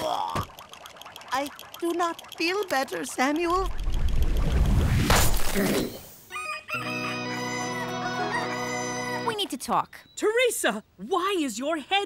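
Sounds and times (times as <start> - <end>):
rooster crowing: 6.3 - 7.6.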